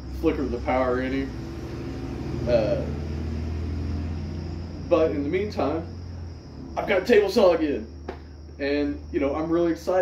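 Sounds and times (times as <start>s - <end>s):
low rumbling hum: 0.0s - 9.5s.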